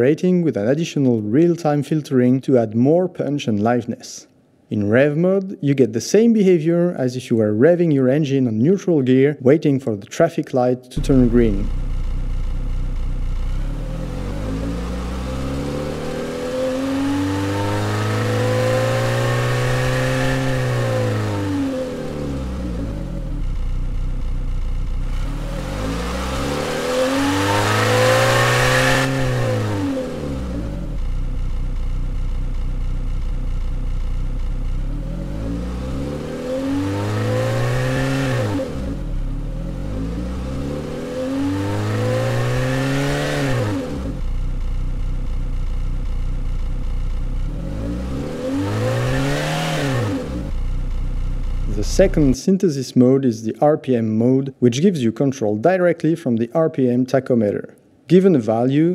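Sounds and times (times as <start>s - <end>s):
synthesized car engine revving: 11.0s - 52.4s.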